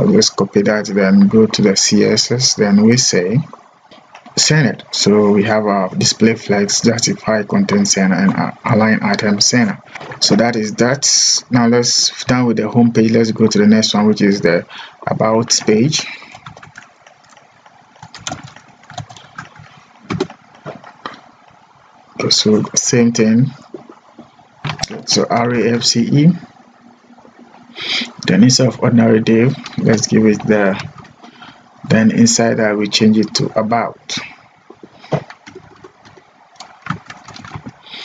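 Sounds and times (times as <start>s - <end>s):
faint background hum: 0.0s - 38.0s
keyboard keys clicking: 16.3s - 17.4s, 18.0s - 20.4s, 35.0s - 37.8s.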